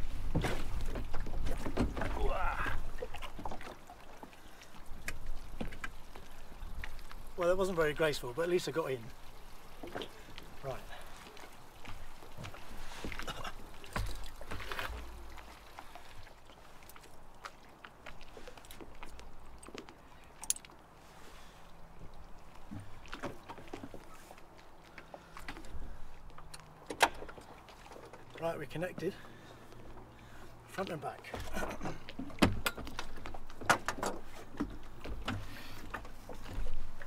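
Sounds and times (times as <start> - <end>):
knocks and rustles in a dinghy: 0.0 - 37.0.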